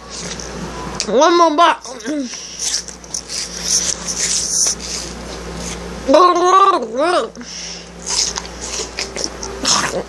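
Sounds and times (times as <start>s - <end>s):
person chewing watermelon: 0.0s - 1.1s, 1.8s - 5.9s, 8.0s - 10.0s.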